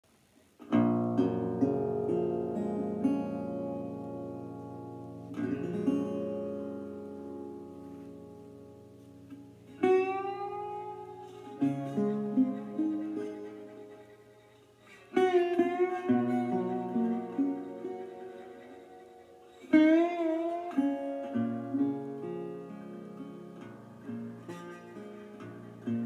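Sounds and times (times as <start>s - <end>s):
resonator guitar with slide: 0.6s - 26.0s.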